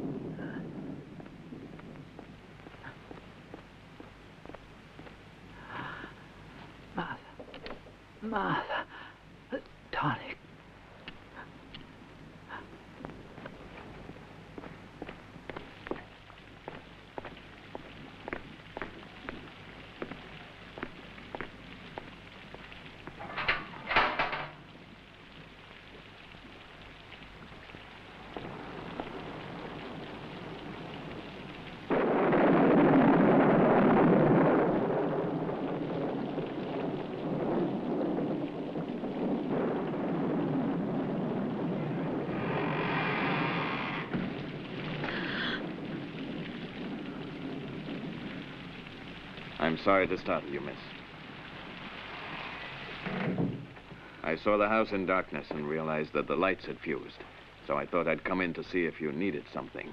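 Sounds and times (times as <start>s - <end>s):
thunderclap rolling into rumble: 0.0s - 6.3s, 26.5s - 59.9s.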